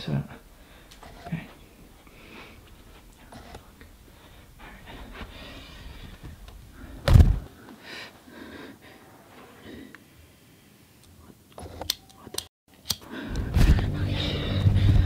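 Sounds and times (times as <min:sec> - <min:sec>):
loud heavy thump: 0:07.0 - 0:07.5.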